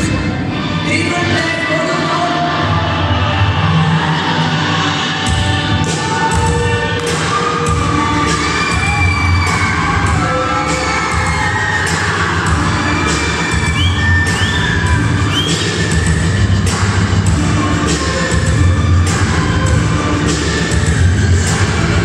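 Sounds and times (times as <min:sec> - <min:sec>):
audience cheering and shouting: 0:00.0 - 0:22.0
loud dance music: 0:00.0 - 0:22.0.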